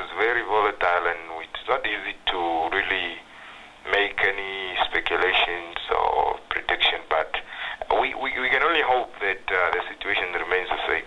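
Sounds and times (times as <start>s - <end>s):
man speaking over telephone: 0.0s - 3.2s, 3.9s - 11.0s.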